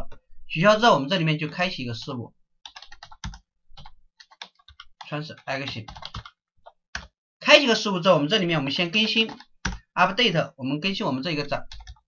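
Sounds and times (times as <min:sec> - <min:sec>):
typing on keyboard: 0:02.0 - 0:07.2, 0:09.0 - 0:09.9, 0:11.7 - 0:12.0.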